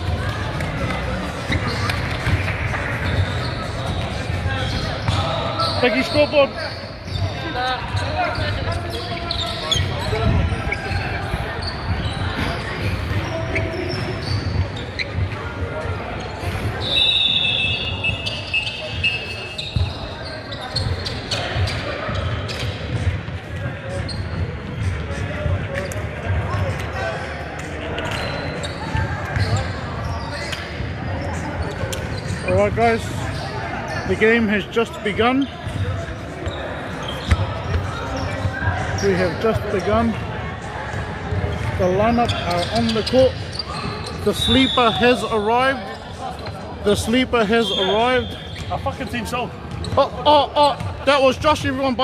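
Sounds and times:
players' voices echoing: 0:00.0 - 0:52.0.

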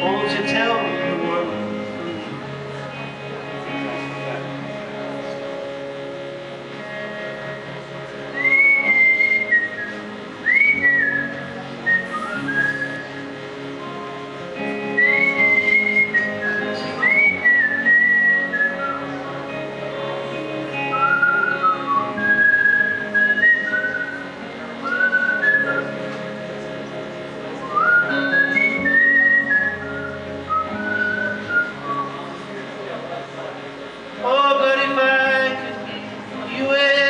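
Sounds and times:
electric guitar chords: 0:00.0 - 0:37.0
man whistling a melody: 0:08.4 - 0:13.3, 0:14.9 - 0:19.1, 0:20.9 - 0:26.0, 0:27.6 - 0:32.3.

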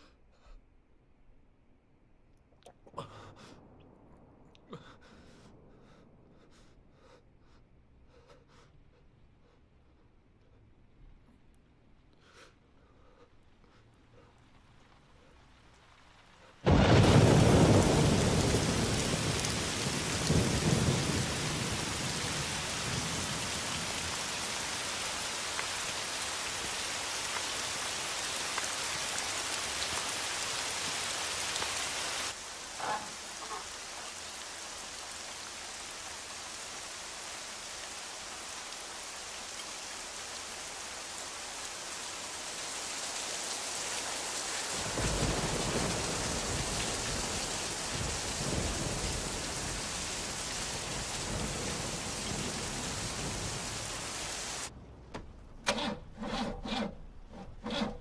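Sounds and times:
heavy rain falling: 0:13.1 - 0:54.8
thunder rumbling: 0:16.6 - 0:26.2, 0:44.6 - 0:55.0.

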